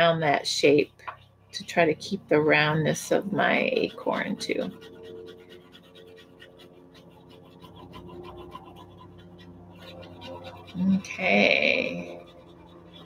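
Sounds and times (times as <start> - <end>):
oil pastel scribbling on paper: 0.0 - 13.0.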